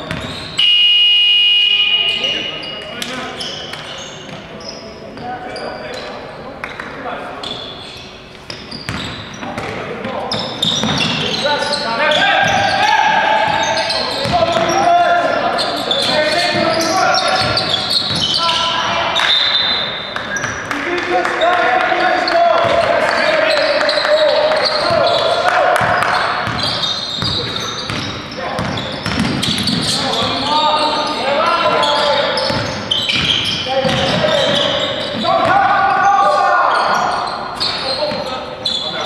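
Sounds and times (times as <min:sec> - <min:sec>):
sneaker squeaks: 0:00.0 - 0:39.0
shrill signal tone: 0:00.6 - 0:02.8
basketball bouncing on hardwood: 0:08.5 - 0:09.8, 0:10.7 - 0:11.2, 0:17.4 - 0:18.3, 0:22.6 - 0:22.9, 0:25.8 - 0:30.2
players shouting: 0:10.7 - 0:39.0.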